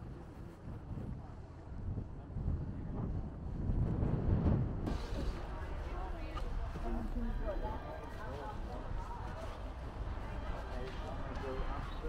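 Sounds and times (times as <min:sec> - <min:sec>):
low street rumble: 0:00.0 - 0:12.0
people talking indistinctly: 0:04.9 - 0:12.0.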